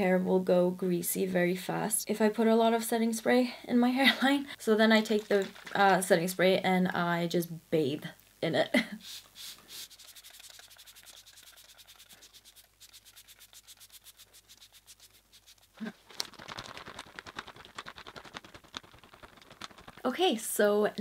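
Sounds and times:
spray bottle spritzing: 9.0s - 15.9s.

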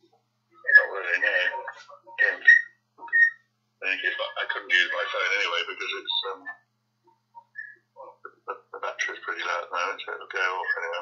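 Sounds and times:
voice over phone call: 0.6s - 2.6s, 3.8s - 6.6s, 8.0s - 11.0s.

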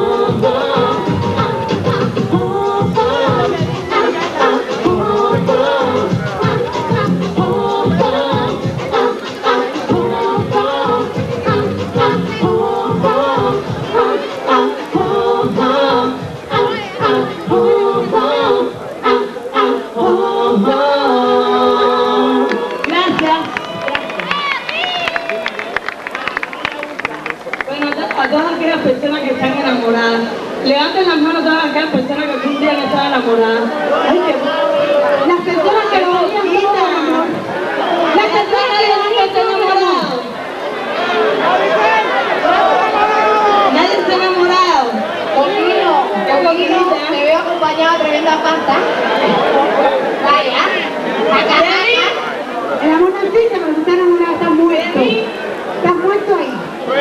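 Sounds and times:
audience shouting and cheering: 0.0s - 21.0s, 22.0s - 29.6s, 32.0s - 53.4s
crowd chatter: 0.0s - 57.0s
voices talking and calling out: 0.0s - 57.0s
sharp claps: 22.5s - 28.4s.

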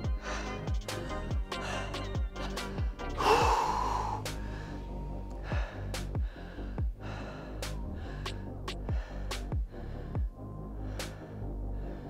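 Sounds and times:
music with steady beat: 0.0s - 11.4s
man exhaling heavily: 3.1s - 7.6s.

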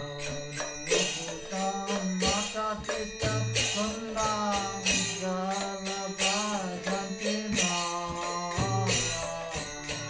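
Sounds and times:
hand cymbals striking: 0.0s - 10.0s
harmonium drone: 0.0s - 10.0s
person singing: 0.0s - 10.0s.

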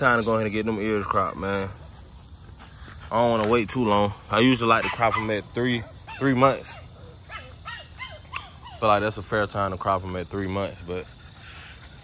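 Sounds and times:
puppies yipping: 4.3s - 12.0s.

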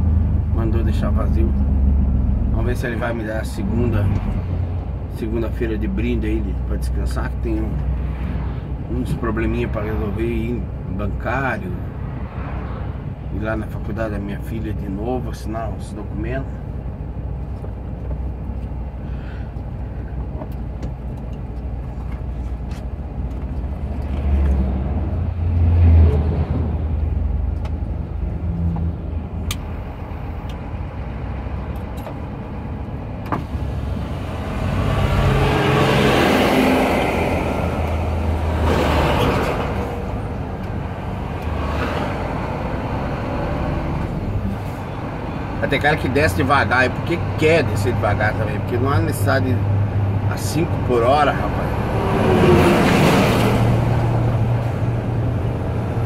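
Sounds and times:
oncoming vehicles passing: 0.0s - 56.0s
road noise: 0.0s - 56.0s.

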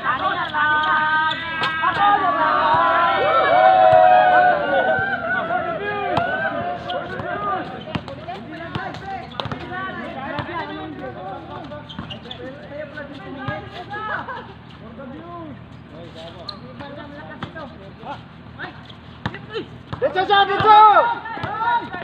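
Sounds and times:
players shouting and talking: 0.0s - 22.0s
basketball bouncing on hard court: 7.1s - 10.7s, 21.4s - 21.6s.

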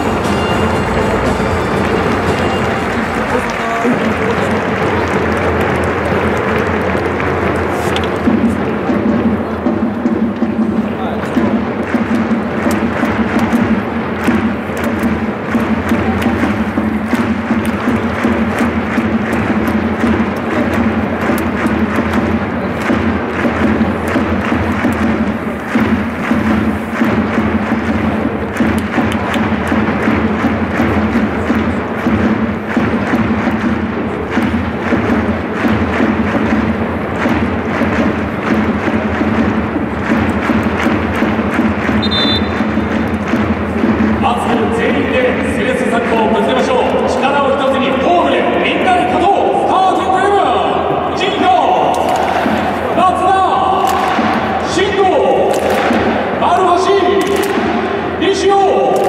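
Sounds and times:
music with thudding drum beats: 0.0s - 49.3s, 51.3s - 59.0s
crowd noise: 0.0s - 59.0s.

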